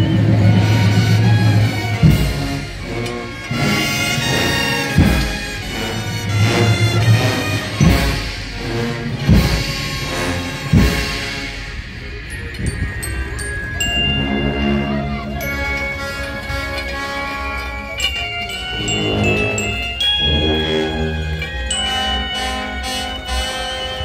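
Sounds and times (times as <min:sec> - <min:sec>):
brass band funeral march: 0:00.0 - 0:12.2, 0:13.9 - 0:24.0
deep drum strikes: 0:00.5 - 0:12.0.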